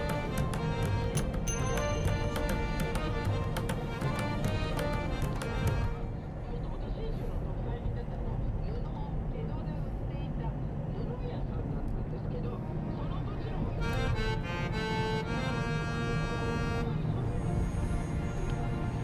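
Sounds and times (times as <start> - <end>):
background music: 0.0 - 6.2, 12.7 - 19.0.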